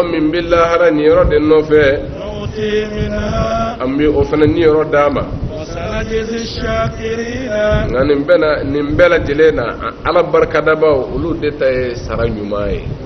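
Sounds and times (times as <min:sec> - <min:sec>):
man chanting melodic recitation: 0:00.0 - 0:13.0.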